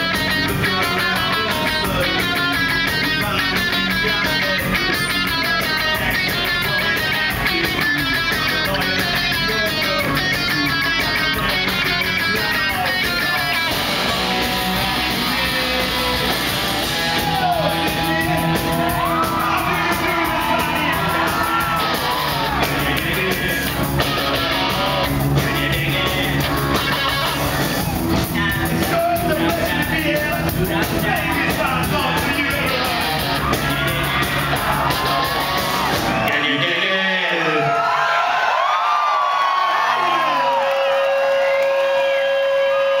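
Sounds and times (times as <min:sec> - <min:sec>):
electric guitars: 0:00.0 - 0:36.5
rock band ringing tone: 0:00.0 - 0:36.7
drums: 0:00.0 - 0:36.8
bass guitar: 0:00.0 - 0:36.9
faint crowd noise: 0:00.0 - 0:43.0
person singing and yelling: 0:00.1 - 0:37.7.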